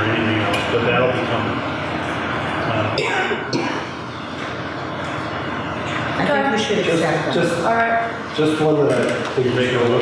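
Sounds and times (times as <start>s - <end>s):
steady rushing room noise: 0.0s - 10.0s.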